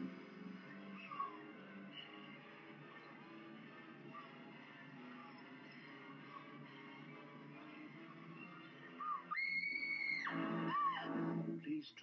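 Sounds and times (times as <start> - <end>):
faint low music: 0.0 - 12.0.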